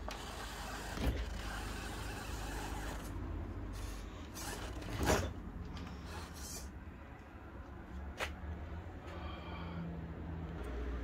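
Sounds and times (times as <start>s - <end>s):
electric motor whirring: 0.0s - 3.2s, 3.8s - 5.2s.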